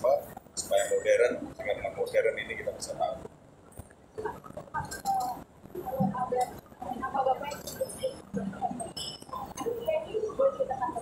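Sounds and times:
people murmuring: 0.0 - 3.3, 4.1 - 11.0.

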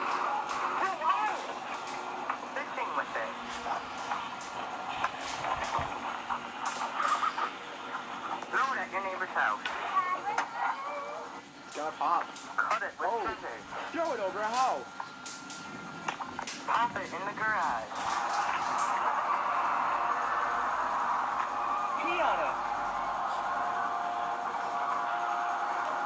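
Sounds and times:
children's voices: 9.8 - 11.3.

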